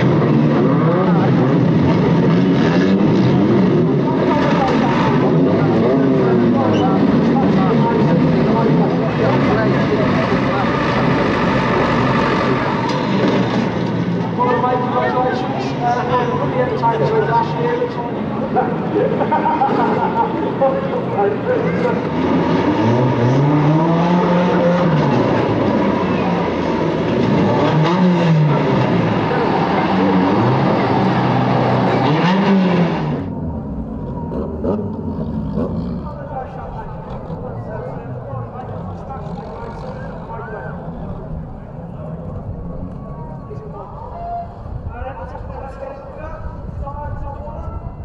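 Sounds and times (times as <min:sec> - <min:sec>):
car engines running: 0:00.0 - 0:47.6
voices chattering: 0:03.3 - 0:13.3, 0:14.1 - 0:22.3, 0:33.2 - 0:48.0.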